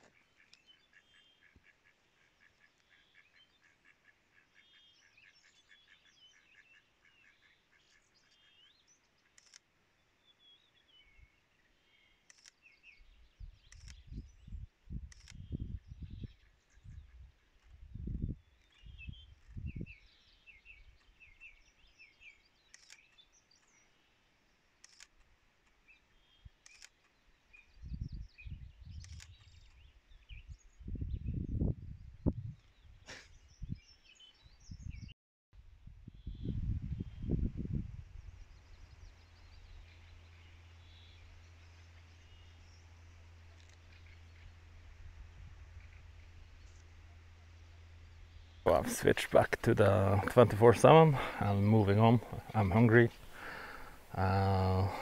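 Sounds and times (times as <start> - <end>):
songbirds trilling: 0.0 - 35.1, 38.2 - 55.0
low microphone rumbles: 17.8 - 19.9, 35.8 - 41.1
camera shutter clicks: 24.8 - 25.1.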